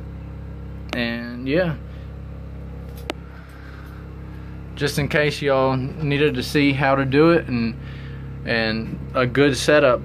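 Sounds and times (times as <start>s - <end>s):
air conditioner humming: 0.0s - 10.0s.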